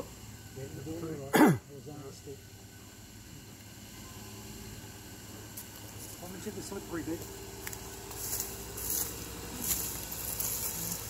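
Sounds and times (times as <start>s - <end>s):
engine running at low revs: 0.0s - 11.0s
crackling hiss bursts: 4.6s - 11.0s.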